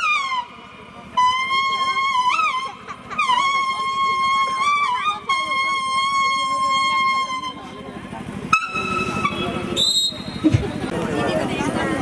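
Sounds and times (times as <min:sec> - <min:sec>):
leaf whistle playing held notes: 0:00.0 - 0:07.9, 0:08.5 - 0:10.5.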